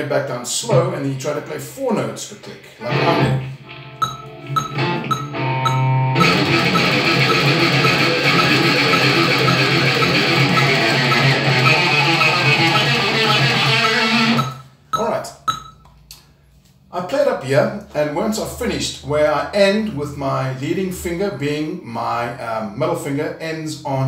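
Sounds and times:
fast electric guitar picking: 2.8 - 15.6
metronome click: 4.0 - 15.9.

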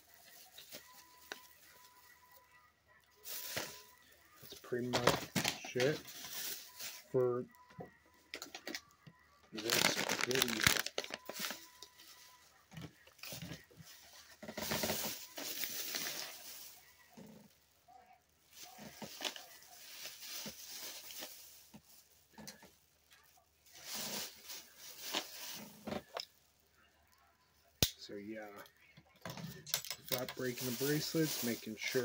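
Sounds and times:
plastic bag rustling: 0.0 - 2.4, 3.1 - 7.2, 9.6 - 26.6, 30.1 - 32.0.

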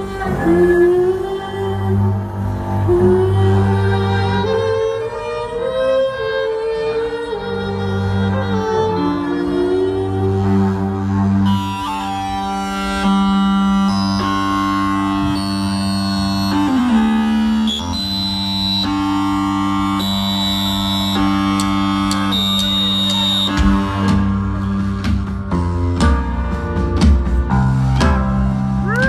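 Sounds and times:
held keyboard chords: 11.1 - 29.0.

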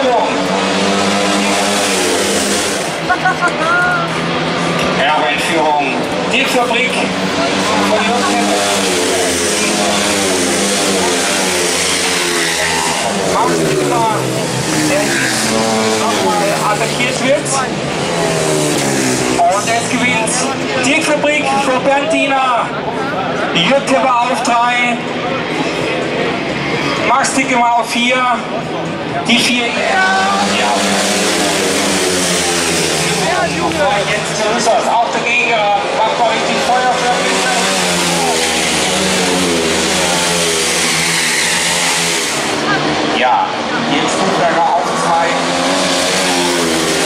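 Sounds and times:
motorcycles racing at full throttle: 0.0 - 47.0.

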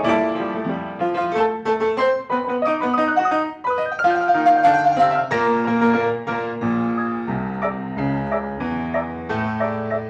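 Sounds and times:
two pianos playing: 0.0 - 10.0.

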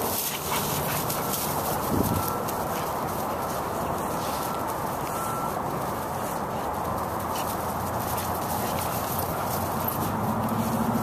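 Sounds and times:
dogs play-wrestling: 0.0 - 11.0
paws scuffling in dry leaves: 0.0 - 11.0.

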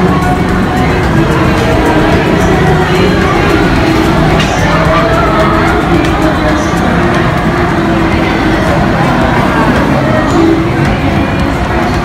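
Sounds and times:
busy crowd of pedestrians: 0.0 - 12.0.

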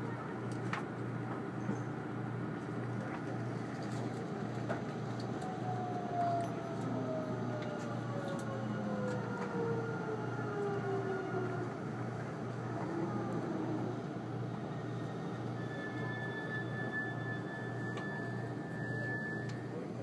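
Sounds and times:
train whine falling in pitch: 15.4 - 19.7.

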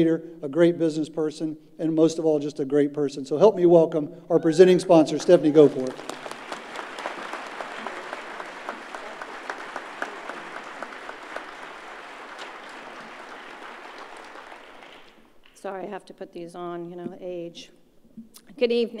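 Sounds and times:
audience applauding: 5.1 - 15.7.

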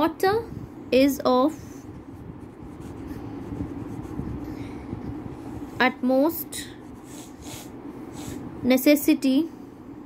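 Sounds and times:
pen scratching on paper: 2.0 - 4.4, 6.8 - 8.4.

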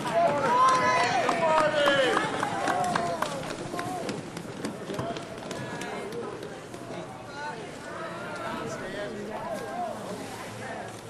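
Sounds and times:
open-air background noise: 0.0 - 11.0
people calling out and exclaiming: 0.0 - 11.0.

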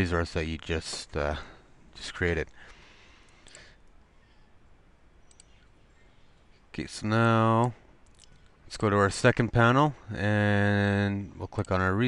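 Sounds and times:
computer mouse clicks: 5.2 - 5.7.

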